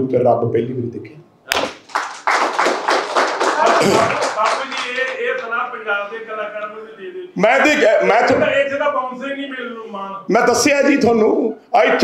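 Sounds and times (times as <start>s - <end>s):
group applauding: 1.5s - 5.6s.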